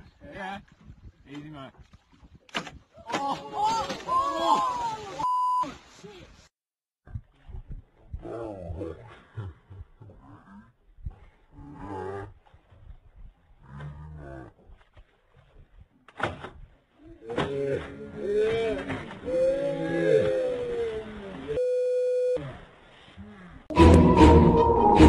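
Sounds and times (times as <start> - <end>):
groan-like yells: 3.0 - 5.2, 17.3 - 21.3
short steady beep: 5.2 - 5.6, 21.6 - 22.4
low drawn-out voices: 17.1 - 21.6.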